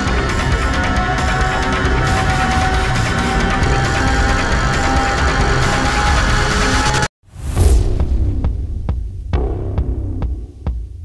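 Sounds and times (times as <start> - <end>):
low rumbling drone: 0.0 - 11.0
deep boom: 7.3 - 11.0.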